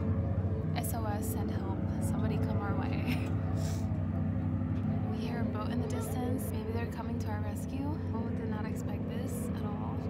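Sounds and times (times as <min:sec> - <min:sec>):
distant boat engine humming: 0:00.0 - 0:10.0.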